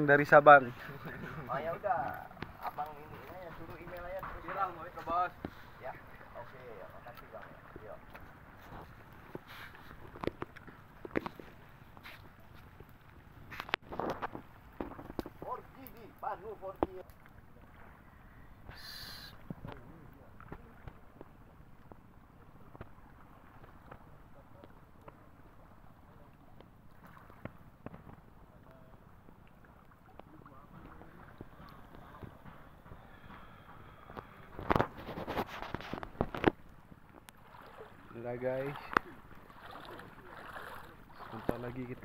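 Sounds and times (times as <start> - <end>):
calm sea water: 0.0 - 42.0
wind: 0.0 - 42.0
sharp knocks or splashes: 26.9 - 28.3, 34.1 - 42.0.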